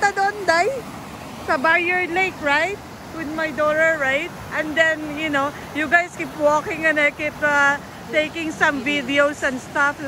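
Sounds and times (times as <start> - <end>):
woman talking: 0.0 - 0.8, 1.5 - 10.0
river rapids rushing over rocks: 0.0 - 10.0.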